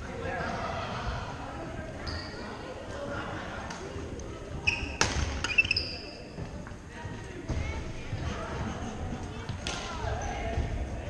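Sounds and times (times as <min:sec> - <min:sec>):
echoing chatter in hall: 0:00.0 - 0:11.0
shoes squeaking on gym floor: 0:02.0 - 0:02.6, 0:04.5 - 0:06.6.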